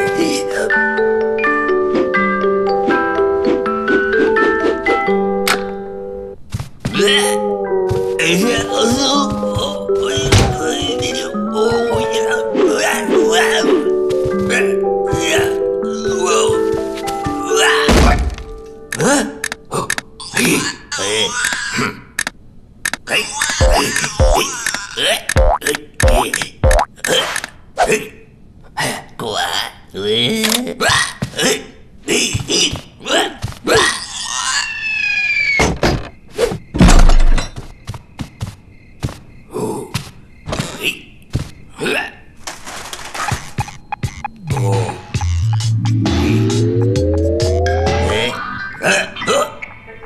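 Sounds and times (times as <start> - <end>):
high effortful creature vocals: 23.1 - 26.3.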